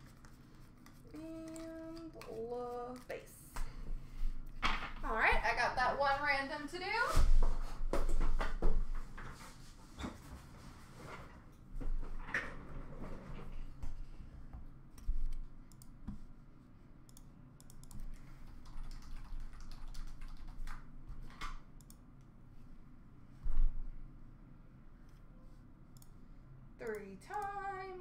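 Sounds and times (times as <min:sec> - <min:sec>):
computer keyboard typing: 0:00.0 - 0:03.1, 0:17.1 - 0:22.0.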